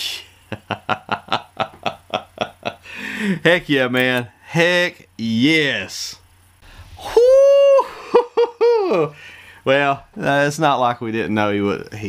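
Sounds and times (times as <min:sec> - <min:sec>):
man laughing and whooping falsetto: 0:07.0 - 0:09.2.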